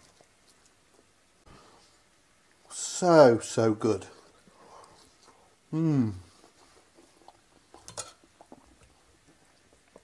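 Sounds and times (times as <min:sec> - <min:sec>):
person humming mmm: 0:05.7 - 0:06.3.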